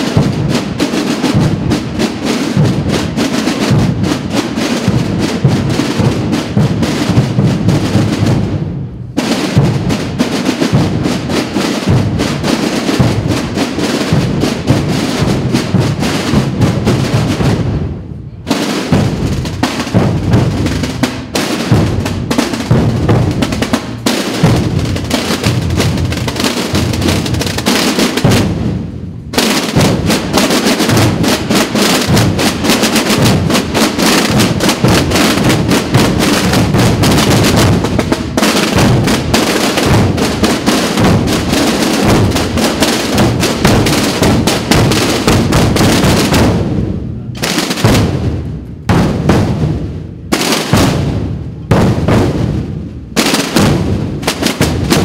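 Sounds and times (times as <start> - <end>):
snare and bass drums beating: 0.0 - 55.0.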